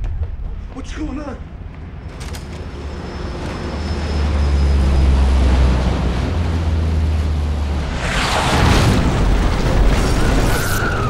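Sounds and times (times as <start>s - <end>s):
aircraft flying overhead: 2.6s - 11.0s.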